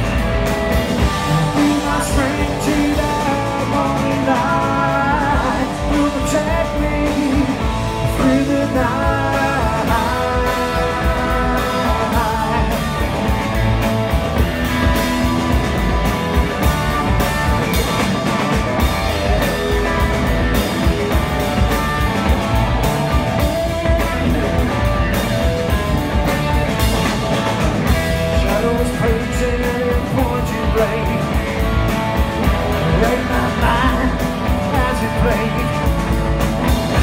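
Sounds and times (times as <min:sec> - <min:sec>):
live rock band playing: 0:00.0 - 0:37.0.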